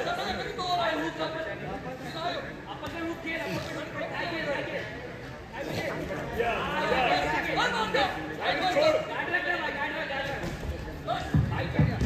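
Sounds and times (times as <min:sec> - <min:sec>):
overlapping chatter of voices: 0:00.0 - 0:12.0.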